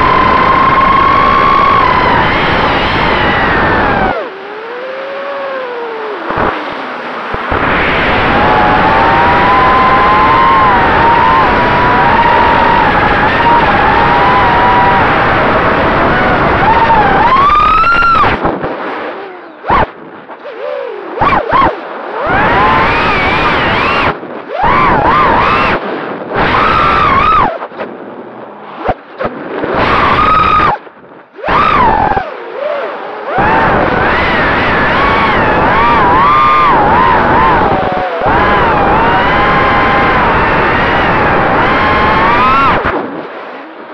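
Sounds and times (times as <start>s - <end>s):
drone motors whining: 0.0s - 27.8s, 28.8s - 43.0s
wind rushing past microphone: 0.0s - 43.9s.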